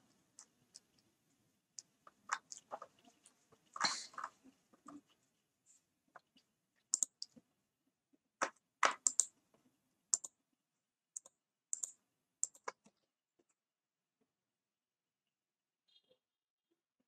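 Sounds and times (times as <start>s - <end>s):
computer keyboard and mouse clicks: 7.0s - 7.4s, 8.4s - 9.3s, 11.2s - 12.9s.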